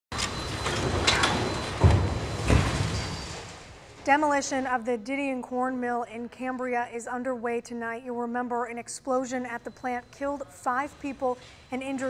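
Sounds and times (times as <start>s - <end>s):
rubble and metal crashing: 0.4s - 4.0s.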